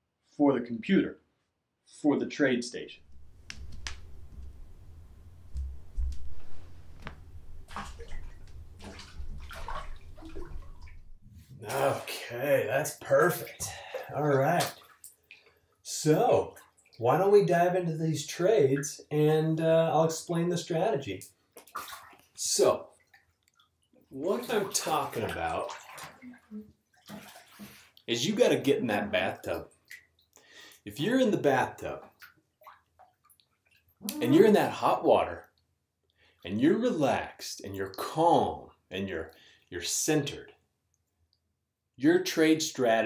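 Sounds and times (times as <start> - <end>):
bath water splashing: 3.1 - 12.3, 12.9 - 19.6, 21.0 - 35.3
water swish: 3.2 - 12.2, 24.2 - 26.4, 27.0 - 28.0.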